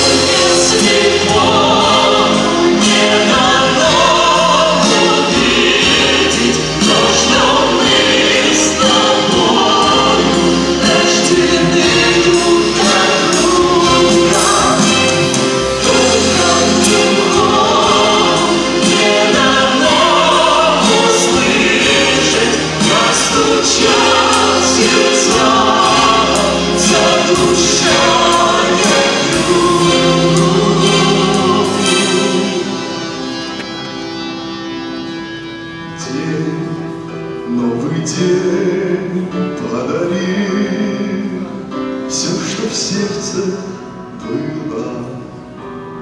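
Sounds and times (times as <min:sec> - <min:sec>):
voices singing slow song: 0:00.0 - 0:34.2
instrumental accompaniment: 0:00.0 - 0:46.0.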